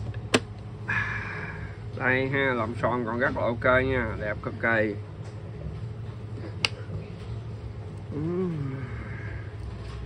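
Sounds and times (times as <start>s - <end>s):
steady low hum: 0.0s - 10.0s
man saying uh-huh: 8.1s - 8.9s.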